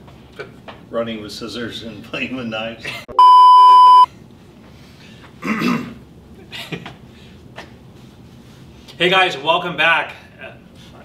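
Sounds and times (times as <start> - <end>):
test tone beep: 3.2 - 4.1
person coughing: 5.4 - 6.0.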